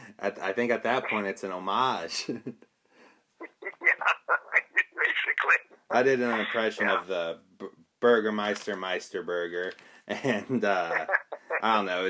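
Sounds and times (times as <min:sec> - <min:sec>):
man laughing in rapid bursts: 0:10.6 - 0:11.6.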